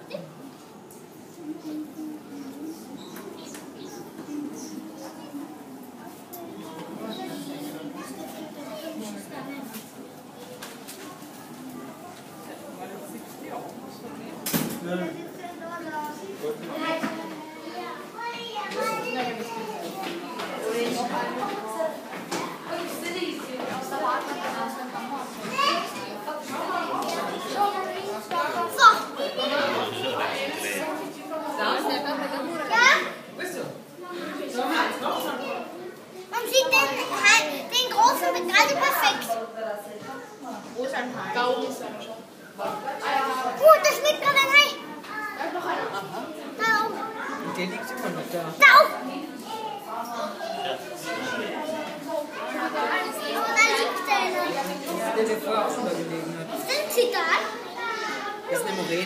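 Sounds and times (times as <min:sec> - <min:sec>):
babble of voices: 0:00.0 - 0:40.8
children chattering and calling out: 0:00.0 - 0:59.0.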